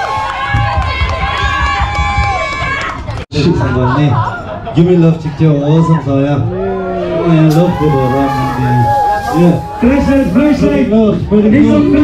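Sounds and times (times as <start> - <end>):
crowd talking and calling out: 3.4 - 12.0.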